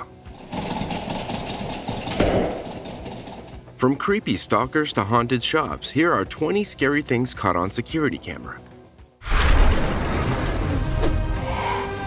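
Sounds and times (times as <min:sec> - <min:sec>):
rapid rattling buzz: 0:00.2 - 0:03.7.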